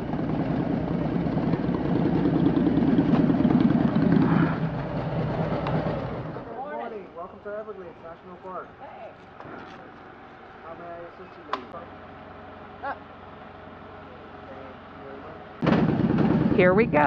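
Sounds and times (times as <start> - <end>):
loud motorcycle pulling away: 0.0 - 7.0
motorcycles idling: 0.0 - 17.0.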